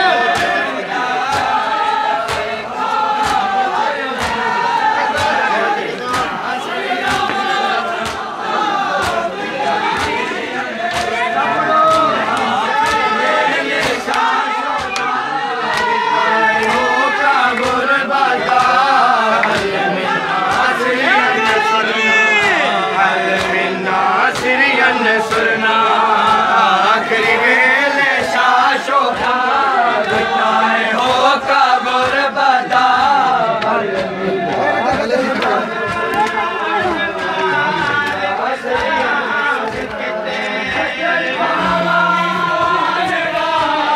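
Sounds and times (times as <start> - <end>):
men chanting a lament: 0.0 - 43.9
hands slapping bare chests: 2.2 - 3.6, 4.2 - 5.4, 7.0 - 8.3, 9.0 - 9.3, 9.9 - 10.2, 10.9 - 13.1, 13.8 - 15.1, 15.7 - 16.0, 18.5 - 19.8.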